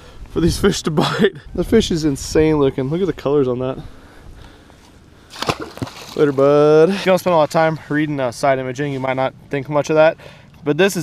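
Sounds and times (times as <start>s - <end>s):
low steady background noise: 0.0s - 11.0s
fish splashing into water: 5.3s - 6.5s.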